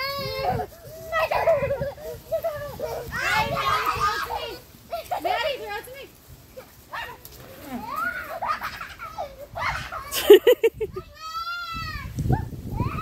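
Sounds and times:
toddlers calling and chattering: 0.0 - 13.0.

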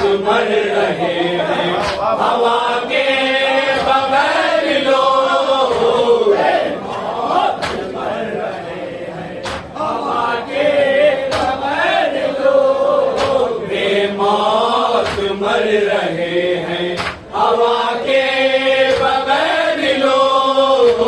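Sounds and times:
men chanting: 0.0 - 21.0.

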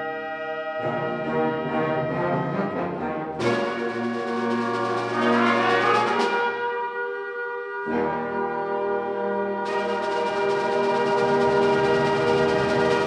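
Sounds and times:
concert band playing chords: 3.4 - 6.6.

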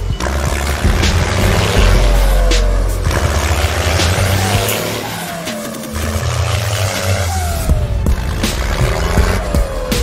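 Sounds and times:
background music: 0.0 - 10.0
engine revving and straining: 0.0 - 10.0.

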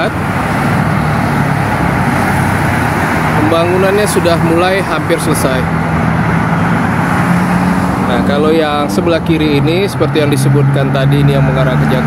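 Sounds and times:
motorway traffic noise: 0.0 - 12.0.

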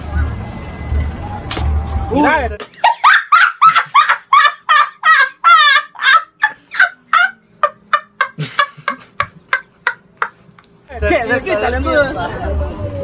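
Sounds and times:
boy cackling laugh: 2.7 - 10.4.

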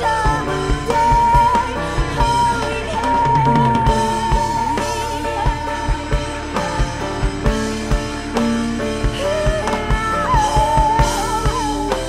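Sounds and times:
drum kit beat: 0.0 - 12.0
guitar: 0.0 - 12.0.

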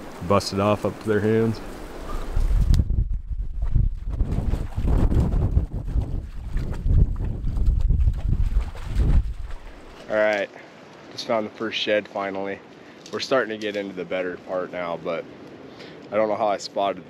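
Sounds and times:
dog splashing in water: 4.2 - 10.0.

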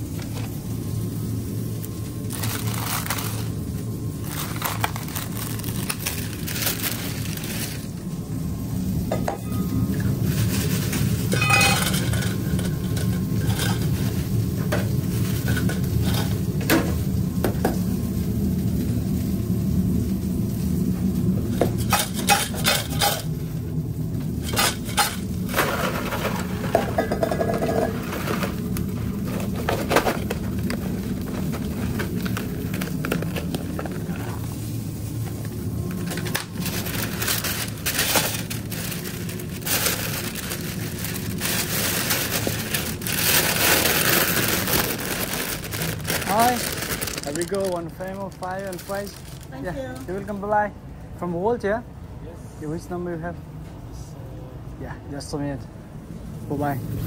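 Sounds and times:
kitchen equipment hum: 0.0 - 57.0.

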